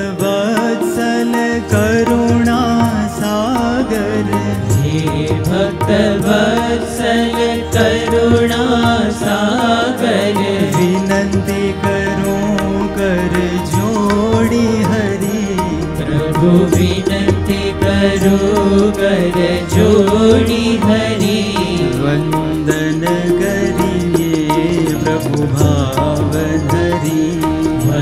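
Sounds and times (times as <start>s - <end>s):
harmonium drone: 0.0s - 28.0s
person singing: 0.0s - 28.0s
sitar melody: 0.0s - 28.0s.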